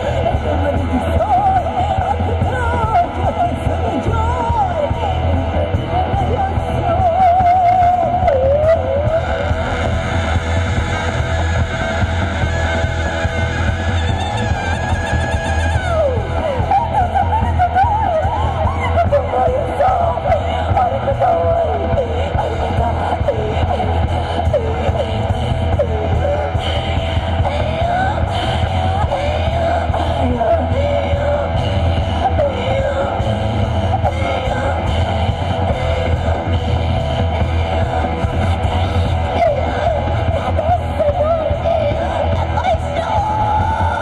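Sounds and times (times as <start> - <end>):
bass guitar: 0.0 - 44.0
drums: 0.0 - 44.0
woman singing with vibrato: 0.0 - 44.0.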